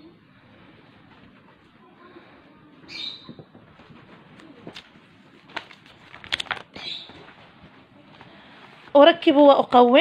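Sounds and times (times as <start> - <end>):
paper rustling: 3.6 - 7.9.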